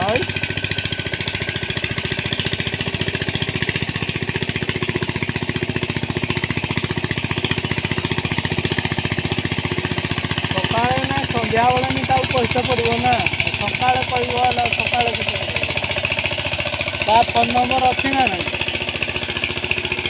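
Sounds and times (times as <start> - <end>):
diesel engine putter: 0.0 - 20.0.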